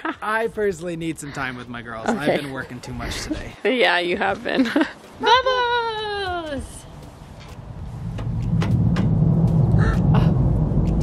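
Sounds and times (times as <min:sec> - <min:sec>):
deep rumble: 0:07.6 - 0:11.0.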